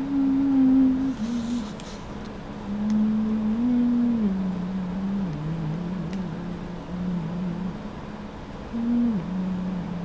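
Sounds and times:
person humming a slow tune: 0.0 - 2.0, 2.6 - 7.9, 8.7 - 10.0.

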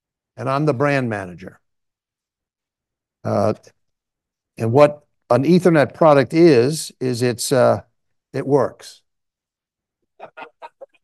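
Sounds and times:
person laughing: 10.2 - 11.0.

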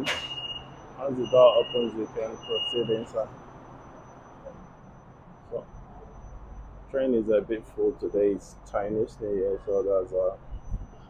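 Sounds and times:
train car humming: 0.0 - 11.0.

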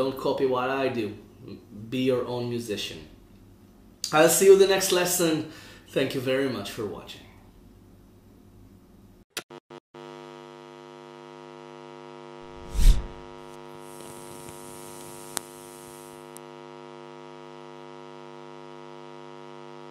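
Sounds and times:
electric hum: 12.5 - 16.5.

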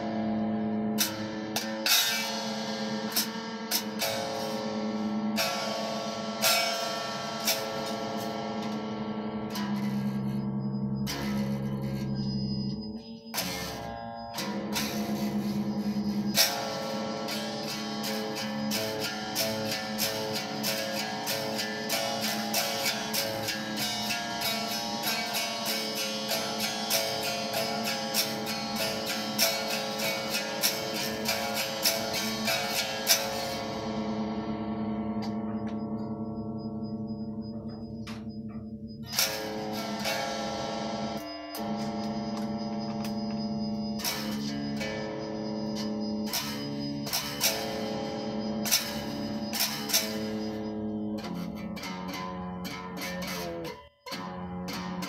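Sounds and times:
electric guitar picked with a coin: 0.0 - 55.0.

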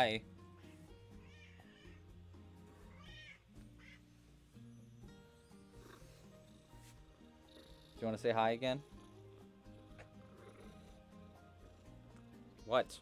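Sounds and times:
quiet background music: 0.0 - 13.0
cat meowing faintly: 0.6 - 2.0, 2.8 - 4.1.

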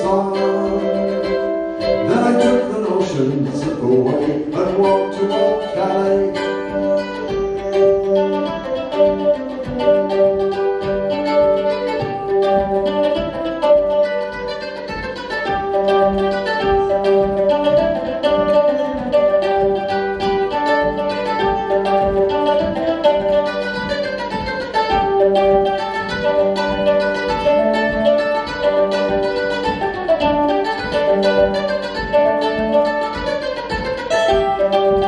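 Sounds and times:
plucked acoustic string instrument: 0.0 - 35.0.

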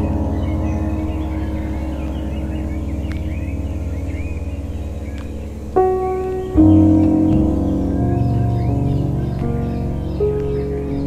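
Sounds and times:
ambient music chord: 0.0 - 11.0
birds chirping: 0.0 - 11.0.

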